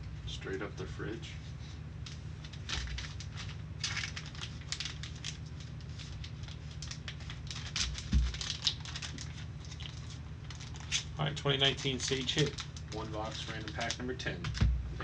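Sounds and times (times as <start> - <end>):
low steady hum: 0.0 - 15.0
plastic card sleeve crinkling: 2.0 - 14.8.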